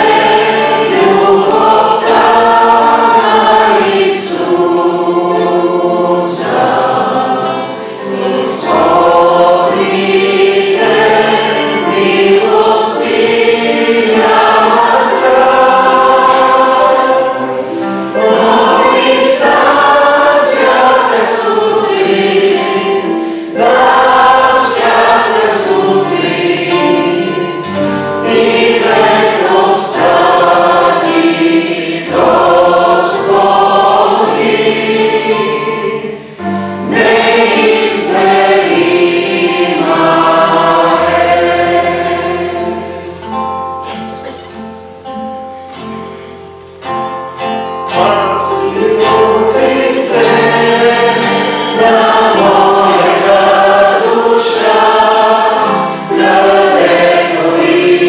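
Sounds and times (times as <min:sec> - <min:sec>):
classical guitar: 0:00.0 - 0:58.0
congregation singing a hymn: 0:00.0 - 0:58.0.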